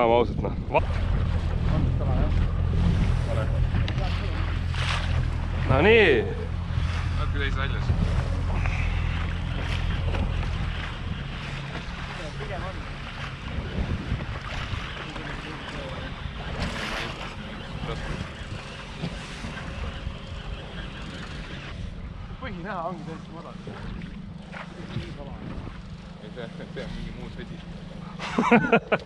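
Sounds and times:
wind buffeting microphone: 0:00.0 - 0:28.1
small boat motor humming: 0:00.0 - 0:29.0
water washing against boat: 0:00.0 - 0:29.0.

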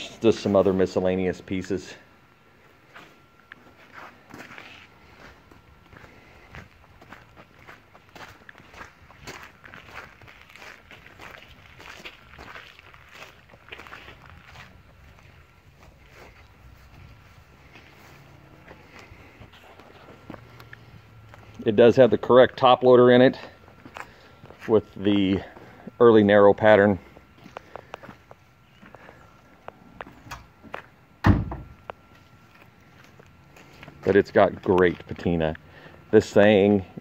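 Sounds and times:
footsteps on concrete: 0:02.9 - 0:21.7, 0:23.3 - 0:25.8, 0:26.9 - 0:30.9, 0:31.8 - 0:35.3.

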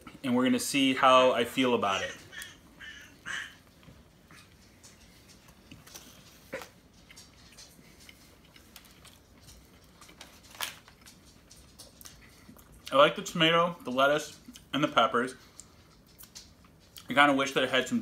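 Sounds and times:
man chewing sandwich: 0:02.1 - 0:12.9, 0:14.4 - 0:17.1.

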